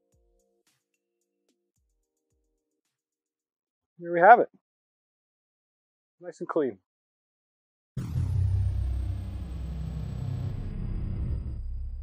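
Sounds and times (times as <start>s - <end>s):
deep rumble: 8.0s - 12.0s
faint high tone gliding down: 8.0s - 12.0s.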